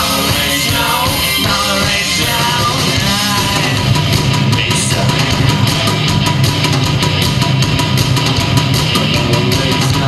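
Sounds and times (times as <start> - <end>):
drum kit fast beat: 0.0 - 10.0
electric guitar: 0.0 - 10.0
live rock band: 0.0 - 10.0.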